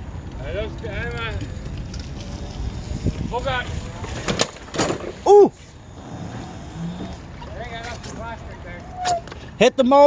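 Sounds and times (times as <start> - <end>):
wind rumble on microphone: 0.0 - 9.2.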